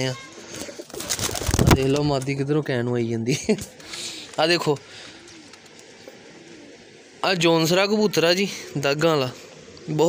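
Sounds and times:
steady background hiss: 0.0 - 10.0
pigeons cooing: 0.2 - 2.0, 3.7 - 10.0.

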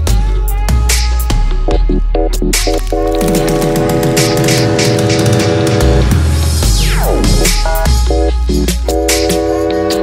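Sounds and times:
deep bass: 0.0 - 10.0
electronic dance music chords: 0.0 - 10.0.

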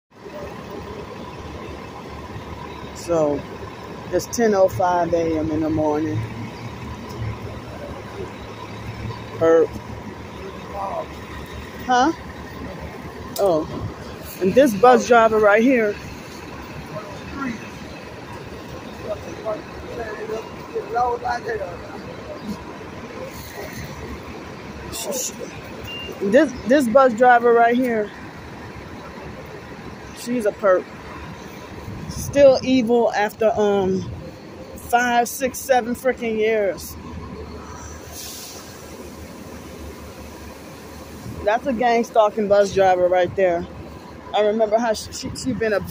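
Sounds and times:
bus engine rumbling: 0.1 - 45.9
street noise: 0.1 - 45.9
compressed air hiss: 38.0 - 39.4.

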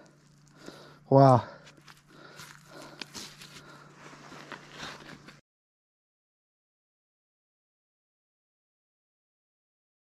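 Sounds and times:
faint rustling: 1.5 - 5.4.

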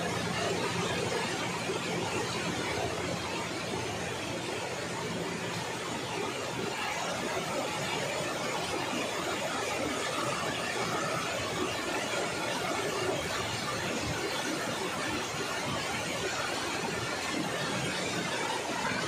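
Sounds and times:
river rushing over rocks: 0.0 - 19.0.

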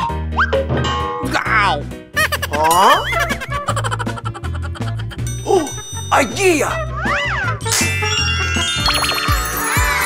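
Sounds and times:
upbeat children's music: 0.0 - 10.0
cartoon magic sound effects: 5.5 - 10.0.

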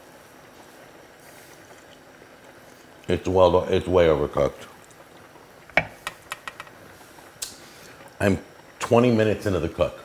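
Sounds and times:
kitchen background noise: 0.0 - 10.0.

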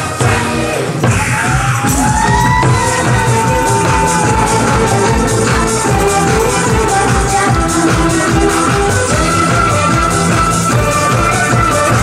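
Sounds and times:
backing track with steady beat: 0.0 - 12.0
hourglass drum played with sticks: 1.1 - 7.4.

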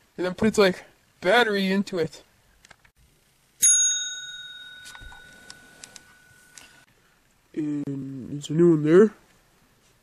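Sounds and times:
small bell ding: 3.6 - 6.8.

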